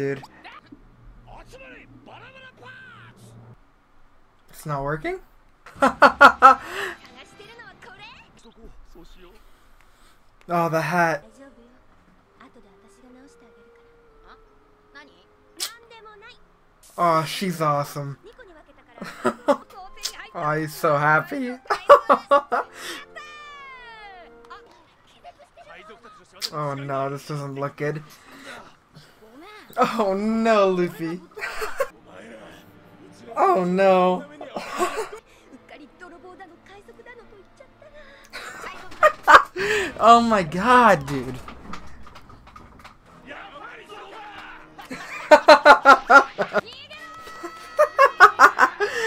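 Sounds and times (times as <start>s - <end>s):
man laughing hard: 5.8s - 7.0s, 34.6s - 35.2s, 44.8s - 46.6s, 47.4s - 49.0s.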